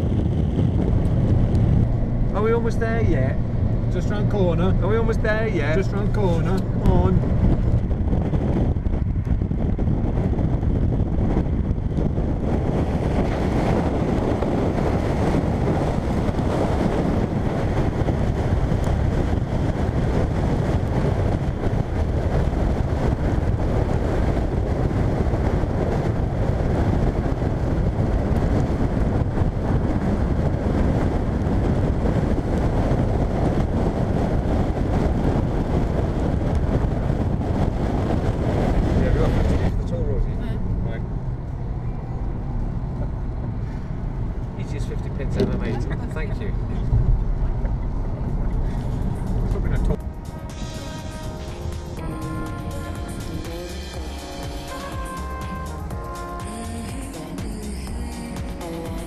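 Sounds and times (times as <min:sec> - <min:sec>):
car cabin hum: 0:00.0 - 0:59.0
tyre and road noise: 0:00.0 - 0:59.0
wind rushing on microphone: 0:00.0 - 0:59.0.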